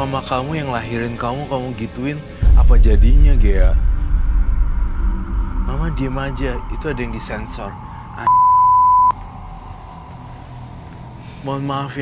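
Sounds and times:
censor bleep: 8.2s - 9.2s.

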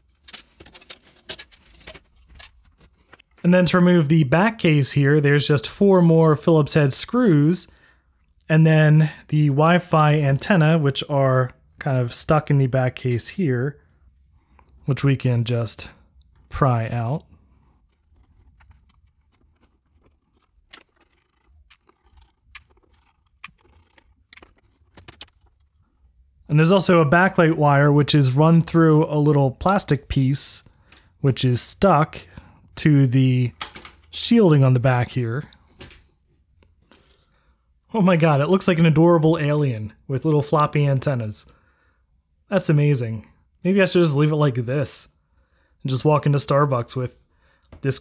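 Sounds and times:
plastic clicks and scraping: 0.1s - 3.4s, 17.4s - 25.9s.

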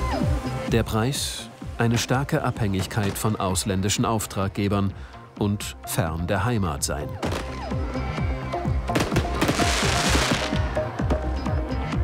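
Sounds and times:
background music: 0.0s - 12.0s
fireworks banging: 8.9s - 10.6s
fireworks crackling hiss: 9.0s - 10.6s.

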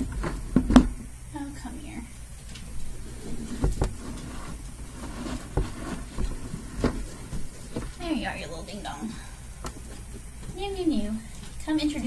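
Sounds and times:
faint rustling: 2.1s - 12.0s.

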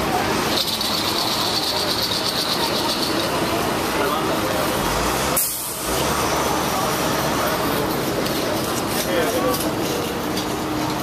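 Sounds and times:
people talking: 0.0s - 11.0s
traffic: 0.0s - 11.0s.

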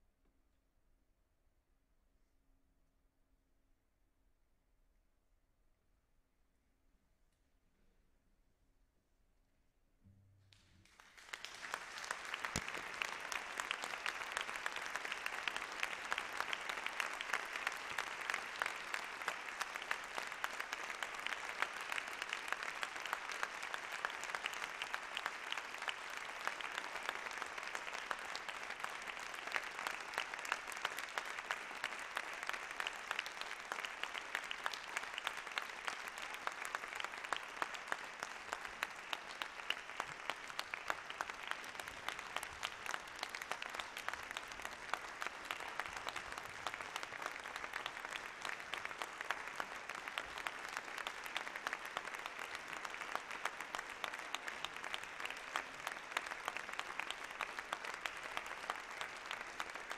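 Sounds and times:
audience applauding: 10.8s - 59.9s.

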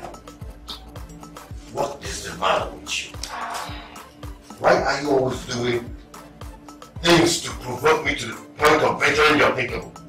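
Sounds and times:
soft background film music: 0.0s - 10.0s.

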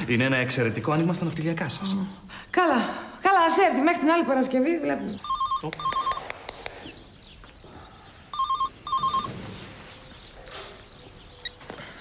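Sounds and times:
mobile phone ringing: 5.2s - 6.3s, 8.3s - 9.4s.

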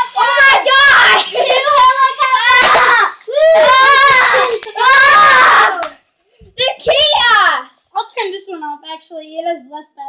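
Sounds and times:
child shouting excitedly: 0.0s - 6.0s, 6.6s - 7.8s.

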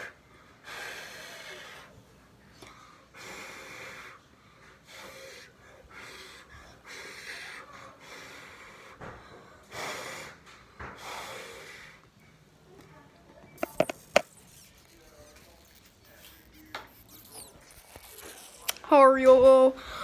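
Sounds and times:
person breathing hard: 0.0s - 2.0s, 2.6s - 12.1s.

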